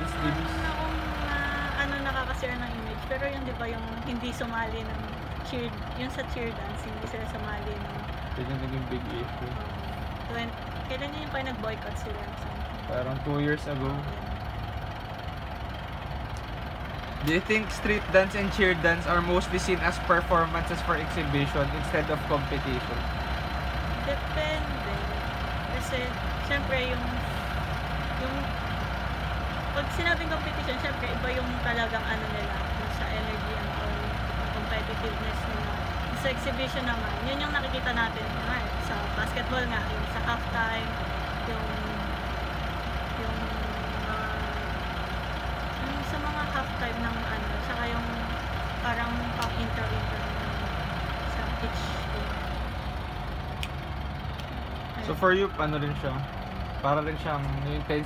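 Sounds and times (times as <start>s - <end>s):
higher hum: 0.0s - 58.0s
low mechanical rumble: 0.0s - 58.0s.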